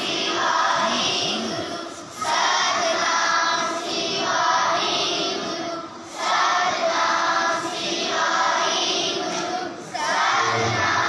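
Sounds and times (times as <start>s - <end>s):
children singing in unison: 0.0s - 11.0s.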